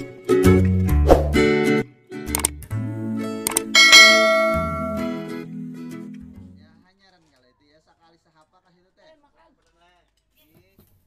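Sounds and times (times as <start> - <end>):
notification bell ding: 3.8 - 5.3
plucked ukulele jingle: 3.8 - 5.4.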